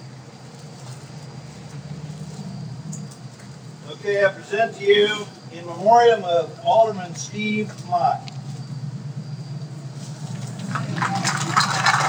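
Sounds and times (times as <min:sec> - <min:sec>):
crowd rustling and shuffling: 0:00.0 - 0:04.0, 0:09.8 - 0:12.0
steady low hum: 0:00.0 - 0:12.0.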